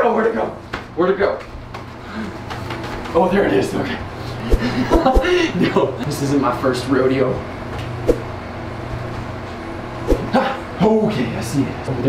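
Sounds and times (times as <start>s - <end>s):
air conditioner humming: 0.0s - 12.0s.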